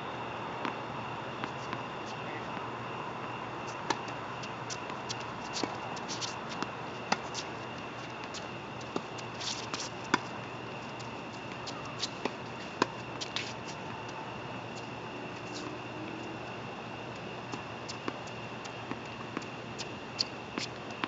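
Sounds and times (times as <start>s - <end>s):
faint high whine: 0.0s - 21.0s.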